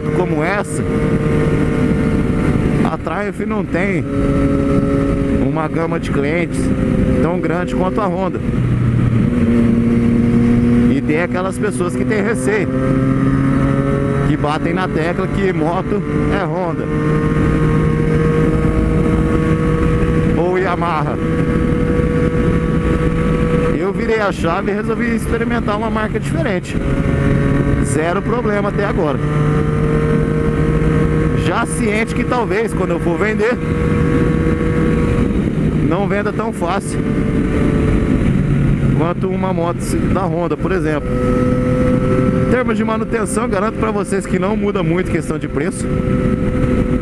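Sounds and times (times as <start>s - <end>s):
motorcycle engine cruising: 0.0s - 47.0s
road rumble: 0.0s - 47.0s
wind: 0.0s - 47.0s.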